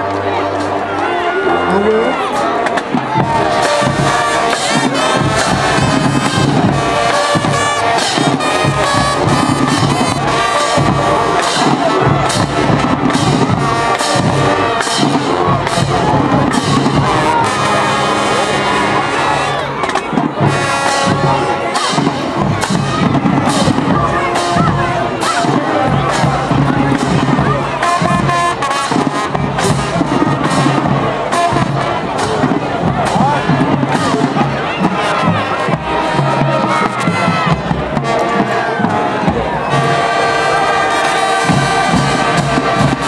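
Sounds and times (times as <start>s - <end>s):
crowd cheering and shouting: 0.0s - 43.0s
marching band playing: 0.0s - 43.0s.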